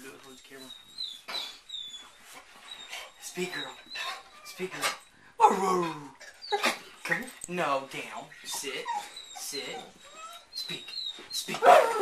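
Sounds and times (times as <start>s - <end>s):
dog yelp: 8.8s - 12.0s
dog whining bark: 11.5s - 12.0s.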